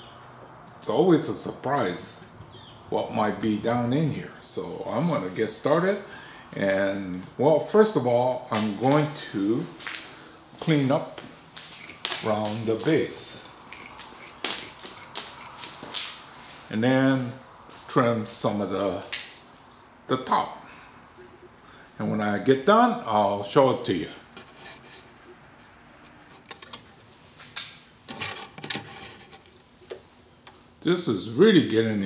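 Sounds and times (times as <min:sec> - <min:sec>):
rustling scrapes: 0:11.6 - 0:16.7, 0:24.3 - 0:25.2, 0:26.2 - 0:29.8
hand tool scraping soil: 0:13.6 - 0:15.9.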